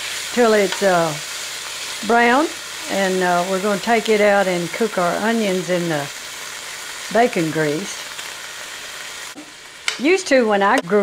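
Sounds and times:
bacon sizzling in a skillet: 0.0 - 11.0.

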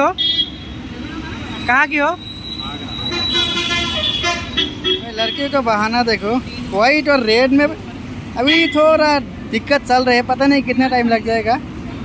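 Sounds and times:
street traffic: 0.0 - 12.0
vehicle horn: 0.2 - 0.7, 3.1 - 5.5.

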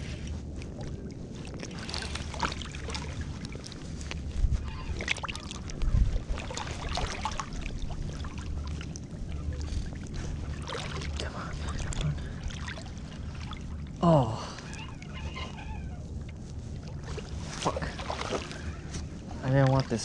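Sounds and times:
microphone handling rumble: 0.0 - 20.0.

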